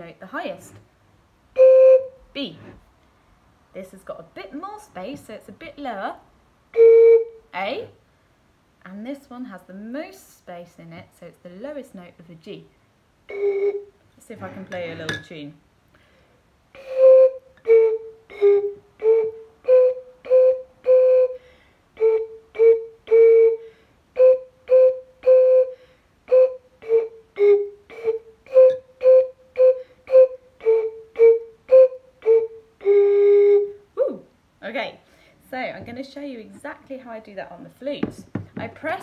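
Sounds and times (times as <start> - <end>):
blowing across bottle tops: 26.4 - 33.6.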